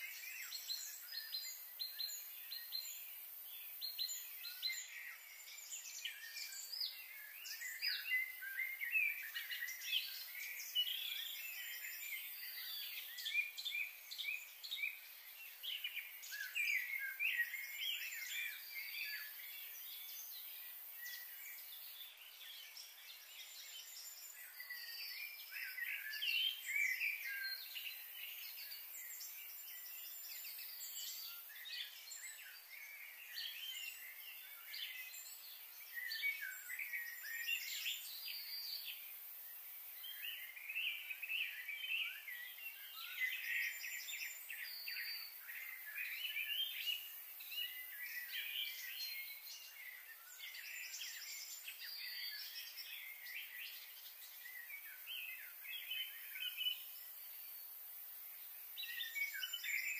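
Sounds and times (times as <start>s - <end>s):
faint high hiss: 0.0s - 59.9s.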